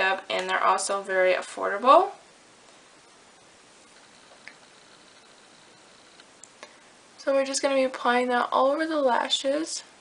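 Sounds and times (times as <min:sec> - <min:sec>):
thin high whine: 0:00.0 - 0:08.0.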